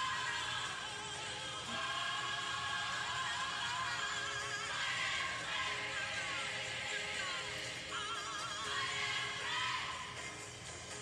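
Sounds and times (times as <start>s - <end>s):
high voice singing with vibrato: 0.0s - 10.6s.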